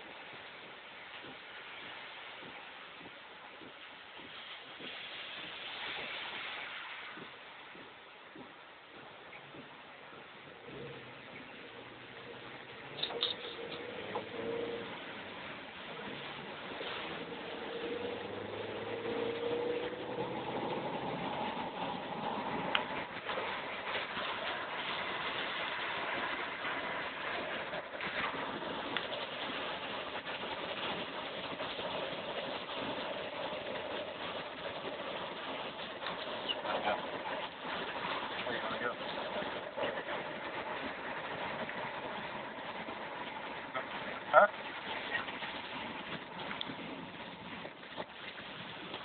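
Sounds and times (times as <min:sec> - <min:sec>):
heavy rain on a car: 0:00.0 - 0:49.0
wind on a moving car: 0:00.0 - 0:49.0.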